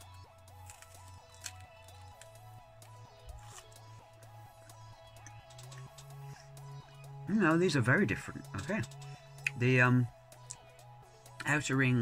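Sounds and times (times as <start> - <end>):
soft chewing: 0.0 - 2.4, 3.1 - 6.4
quiet background music: 0.0 - 12.0.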